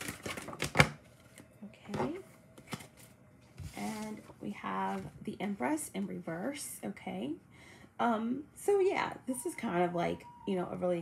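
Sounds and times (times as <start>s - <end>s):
cards being shuffled: 2.6s - 4.3s.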